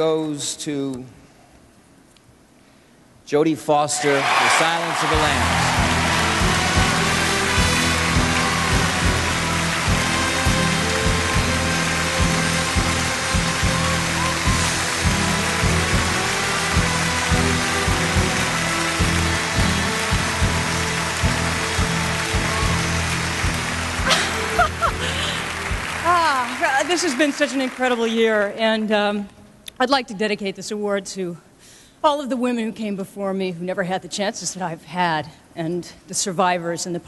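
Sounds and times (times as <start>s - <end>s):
audience applause: 4.0s - 28.6s
orchestra playing: 4.2s - 28.0s.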